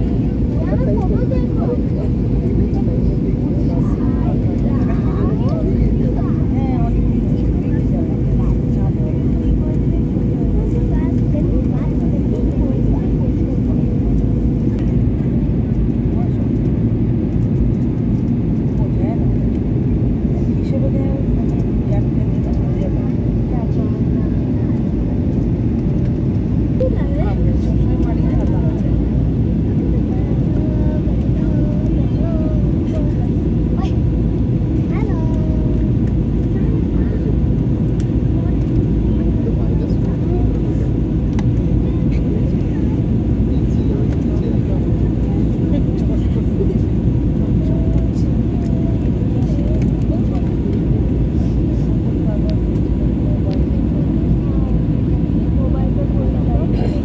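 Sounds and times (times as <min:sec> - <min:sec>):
airliner cabin engine rush: 0:00.0 - 0:57.0
faint voices murmuring: 0:00.0 - 0:57.0.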